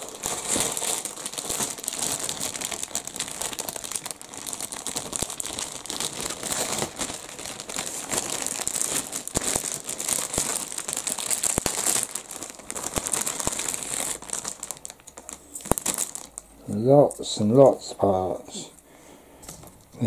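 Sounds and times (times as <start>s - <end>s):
plastic bags crinkling: 0.0s - 17.3s.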